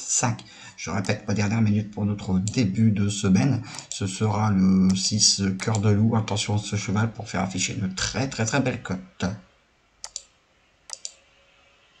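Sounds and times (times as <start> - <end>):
computer mouse clicks: 3.7 - 4.1, 4.9 - 6.4, 10.0 - 11.3.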